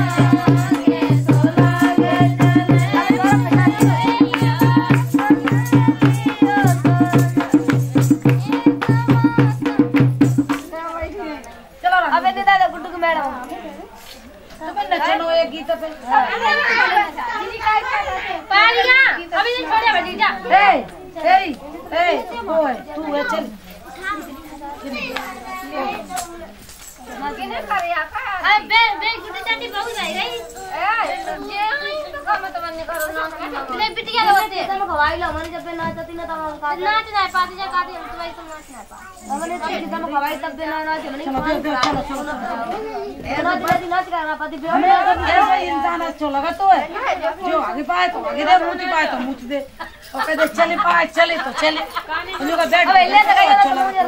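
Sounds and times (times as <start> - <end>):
children and women talking: 0.0 - 54.0
women chattering: 0.0 - 54.0.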